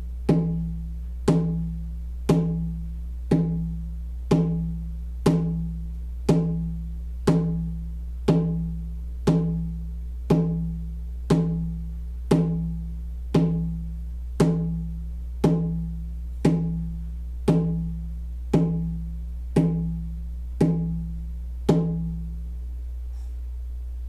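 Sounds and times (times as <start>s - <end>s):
hand drum beating slowly: 0.2s - 22.3s.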